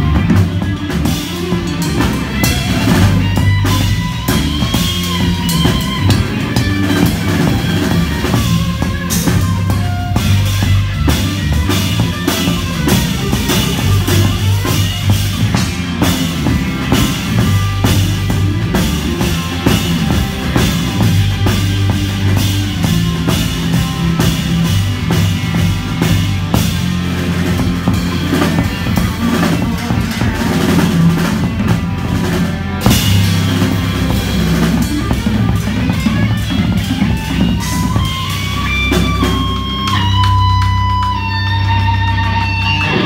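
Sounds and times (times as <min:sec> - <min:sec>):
bass guitar: 0:00.0 - 0:43.0
drum kit: 0:00.0 - 0:43.0
electric guitar: 0:00.0 - 0:43.0.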